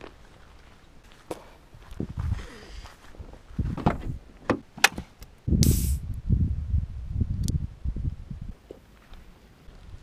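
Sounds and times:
handling knocks and rumbling: 3.6 - 5.1
short hiss: 5.6 - 6.0.

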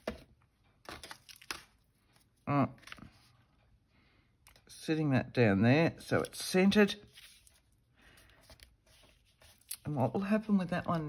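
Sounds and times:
paper rustling and scraping: 6.9 - 11.0.

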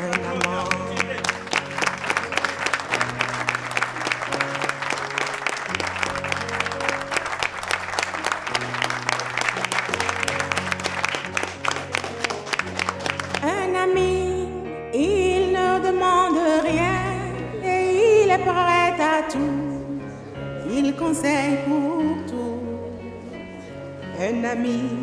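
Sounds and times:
crowd clapping along: 0.0 - 13.6.

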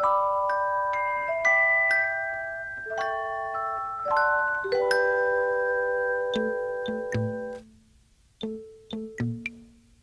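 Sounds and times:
chime-like music notes: 0.0 - 7.6
light tapped notes: 6.3 - 7.7, 8.4 - 9.8.

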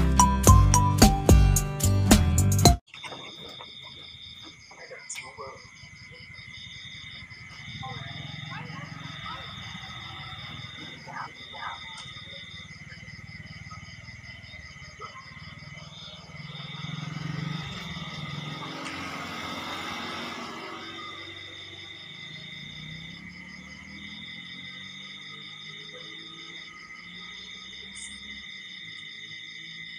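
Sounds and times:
crickets trilling: 2.9 - 29.9.

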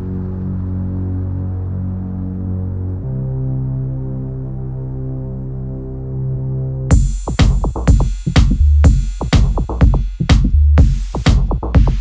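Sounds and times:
low synth drone: 0.0 - 7.2
loud beat hit: 6.9 - 12.0.

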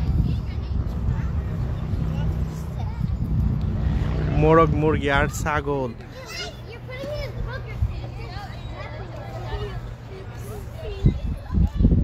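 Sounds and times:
wind rumbling on microphone: 0.0 - 6.0, 9.6 - 12.0.

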